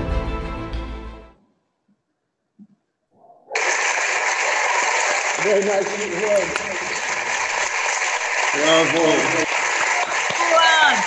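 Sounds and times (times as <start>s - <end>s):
applause: 3.6s - 11.0s.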